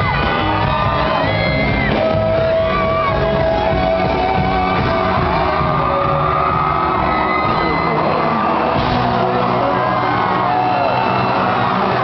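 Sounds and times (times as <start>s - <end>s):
crowd shouting and cheering: 0.0s - 12.0s
rock band playing live: 0.0s - 12.0s
man singing: 0.2s - 11.0s.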